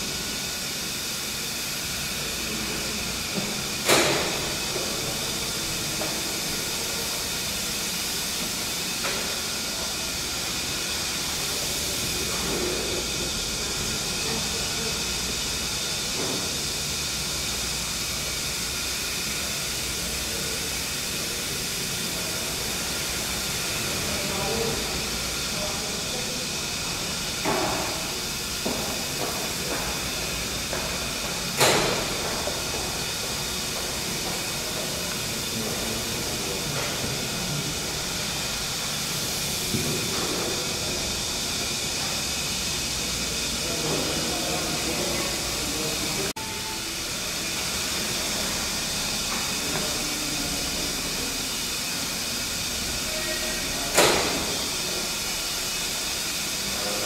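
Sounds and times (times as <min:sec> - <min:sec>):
steam engine hiss and hum: 0:00.0 - 0:57.0.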